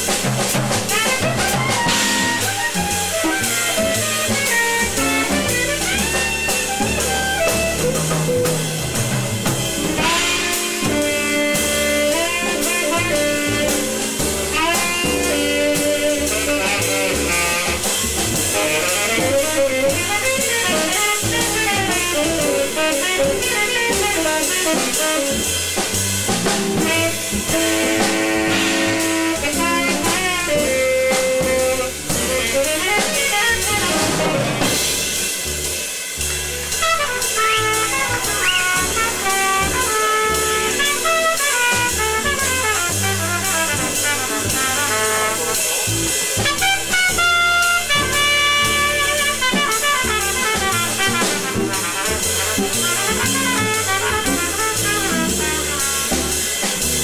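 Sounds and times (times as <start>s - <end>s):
bass: 0.0s - 57.0s
drum kit: 0.0s - 57.0s
saxophone: 0.0s - 57.0s
trumpet: 0.0s - 57.0s.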